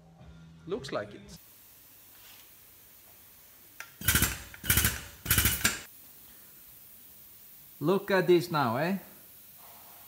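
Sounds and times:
impact power tool hammering: 0:03.8 - 0:05.9.

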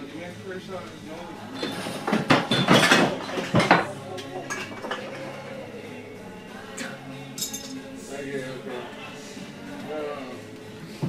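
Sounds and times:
music playing: 0:00.0 - 0:11.0
raised voices and knocks: 0:01.5 - 0:05.4.

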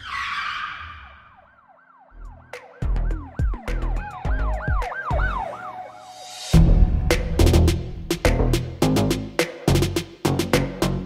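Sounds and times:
siren-like wail: 0:00.0 - 0:06.6
whoosh hit: 0:06.2 - 0:08.5
heavy bass hits: 0:06.6 - 0:10.0.

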